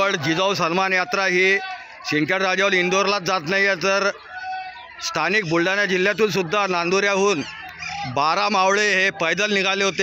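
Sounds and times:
man speaking loudly: 0.0s - 10.0s.

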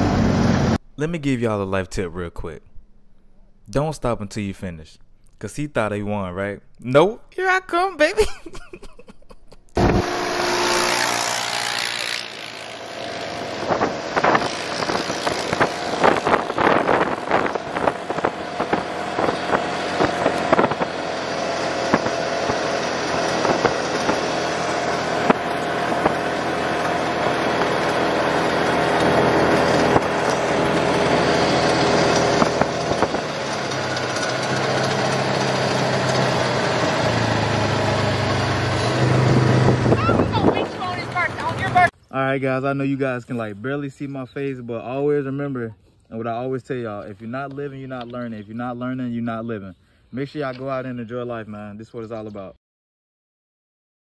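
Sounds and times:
utility vehicle engine running: 0.0s - 0.8s, 9.8s - 41.9s.

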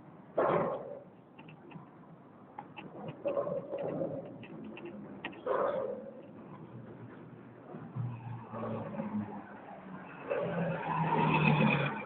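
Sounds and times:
vehicle engine: 2.8s - 12.0s.

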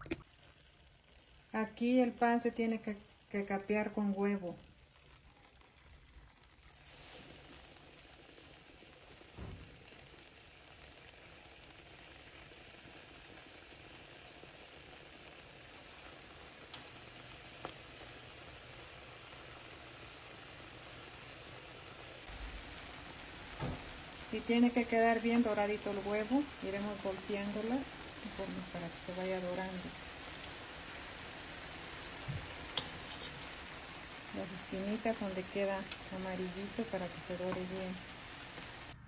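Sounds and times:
bread frying in hot oil: 0.0s - 39.0s.

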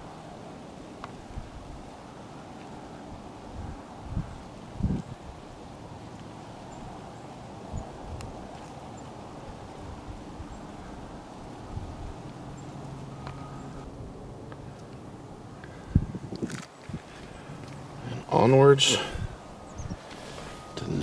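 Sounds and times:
wind hiss: 0.0s - 21.0s
wind thumps on microphone: 3.5s - 5.3s, 15.9s - 17.1s.

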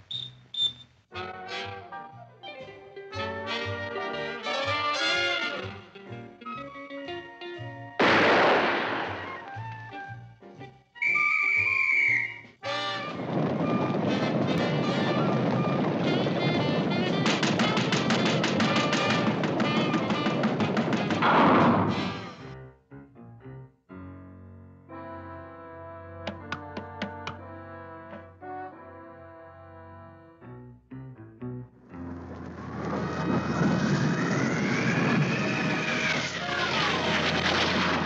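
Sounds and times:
short whistle-like tone: 0.0s - 0.9s, 11.0s - 12.5s
brass music cue: 1.1s - 2.2s, 3.1s - 6.2s, 12.4s - 20.7s, 24.9s - 30.8s
rapid clatter of cartoon stampede: 12.8s - 22.4s, 32.1s - 38.0s
sudden noisy burst: 32.0s - 38.0s.

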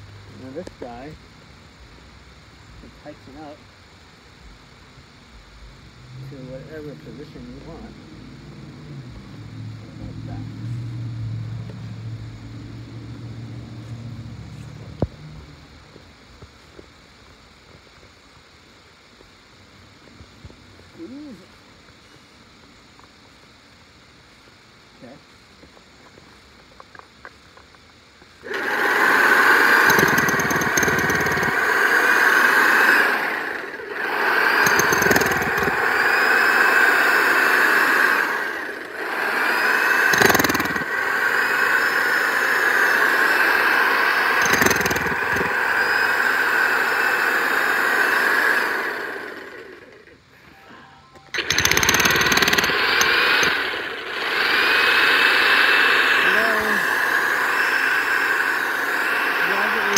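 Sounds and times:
jackhammer hammering into soil: 28.4s - 50.1s, 51.3s - 59.9s.

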